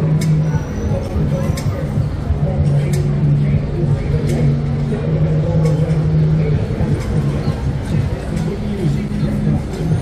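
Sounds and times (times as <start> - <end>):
people's voices: 0.0 - 10.0
trams and cars humming: 0.0 - 10.0.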